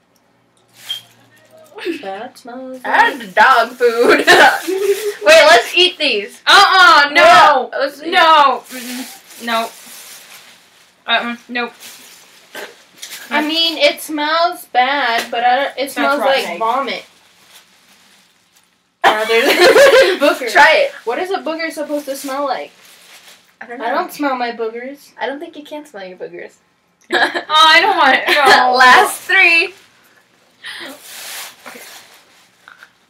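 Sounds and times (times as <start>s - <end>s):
plastic bag rustling: 0.7s - 1.9s, 2.8s - 5.9s, 8.1s - 14.0s, 16.0s - 24.0s, 28.3s - 33.0s
faint hiss: 8.2s - 14.2s, 28.8s - 33.0s.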